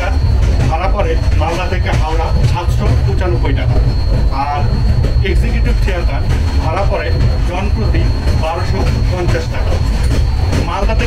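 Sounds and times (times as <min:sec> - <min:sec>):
train wheels rumbling on track: 0:00.0 - 0:11.0
voices: 0:00.0 - 0:11.0.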